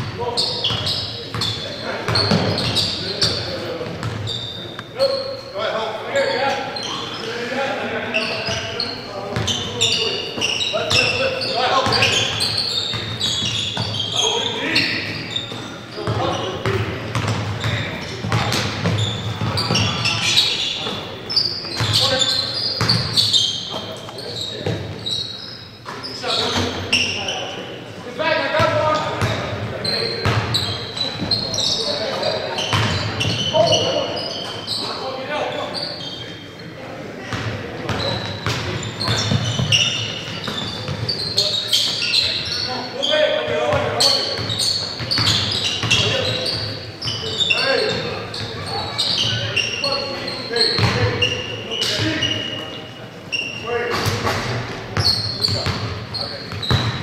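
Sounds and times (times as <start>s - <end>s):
sneaker squeaks: 0.0s - 57.0s
basketball bouncing on wooden floor: 16.0s - 19.9s, 56.6s - 57.0s.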